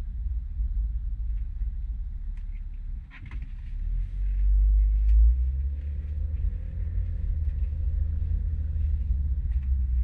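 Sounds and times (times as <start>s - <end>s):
car cabin low rumble: 0.0s - 10.0s.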